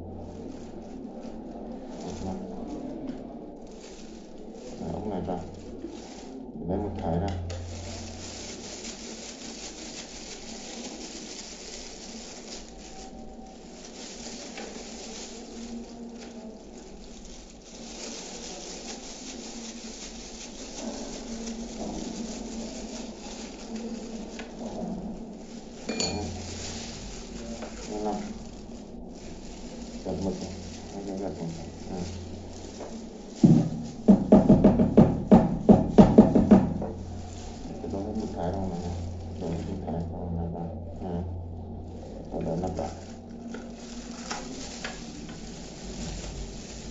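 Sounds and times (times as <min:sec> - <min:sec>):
rapid knocking on cardboard box: 0:33.4 - 0:37.0.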